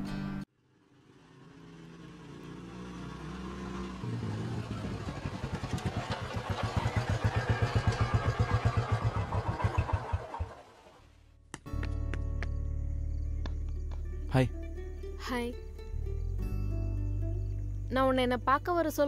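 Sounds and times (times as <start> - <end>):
motorcycle engine throbbing: 0.8 - 11.0
background music: 11.5 - 19.0.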